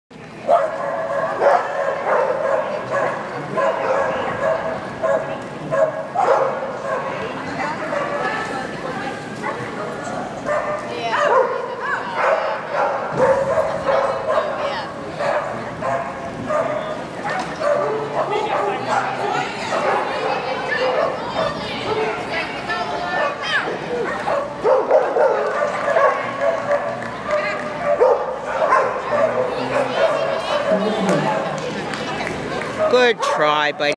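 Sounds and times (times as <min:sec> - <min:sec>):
people talking: 0:06.8 - 0:28.1, 0:28.7 - 0:33.9
dog barking and yipping: 0:24.1 - 0:27.0, 0:27.8 - 0:31.5.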